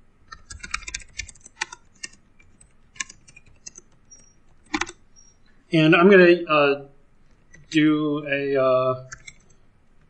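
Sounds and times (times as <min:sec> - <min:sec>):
typing on computer keyboard: 0:00.3 - 0:05.0, 0:09.0 - 0:09.5.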